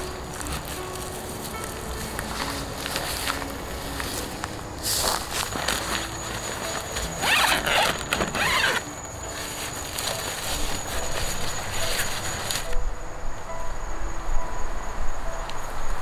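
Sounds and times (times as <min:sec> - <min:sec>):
tent fabric rustling: 0:00.0 - 0:12.8
loud rasping zip: 0:05.7 - 0:08.9.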